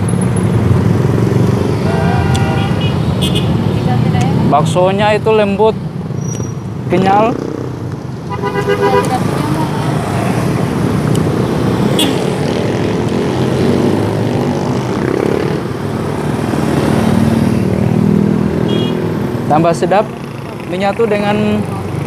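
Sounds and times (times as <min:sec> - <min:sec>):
motorcycles passing: 0:00.0 - 0:22.0
road noise: 0:00.0 - 0:22.0.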